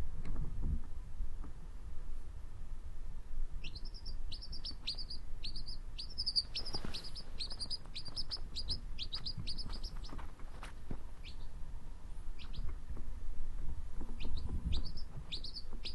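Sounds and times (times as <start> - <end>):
quail chick peeping: 3.6 - 11.6, 12.3 - 13.0, 14.0 - 15.9.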